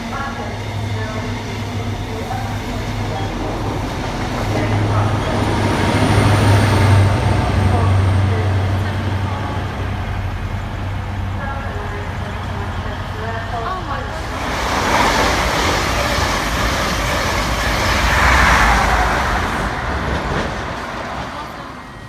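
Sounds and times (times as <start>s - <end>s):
train passing at speed: 0.0s - 22.0s.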